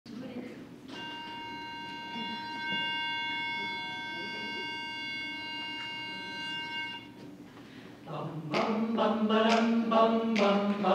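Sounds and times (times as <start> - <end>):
pitch pipe sustained note: 0.9 - 7.2.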